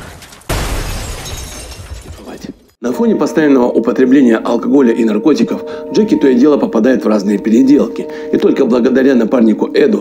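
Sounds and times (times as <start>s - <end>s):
car crash: 0.0s - 2.3s
glass shattering: 0.0s - 2.8s.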